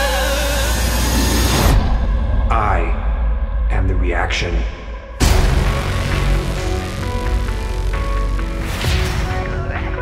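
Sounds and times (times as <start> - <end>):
deep boom: 5.2 - 9.4.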